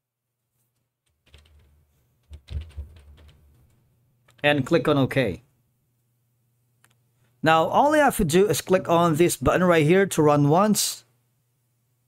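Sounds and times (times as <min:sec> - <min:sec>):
computer keyboard typing: 0:01.2 - 0:04.5.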